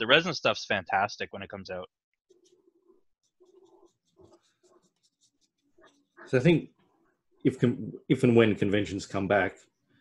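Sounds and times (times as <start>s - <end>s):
pencil scratching on paper: 2.3s - 7.4s.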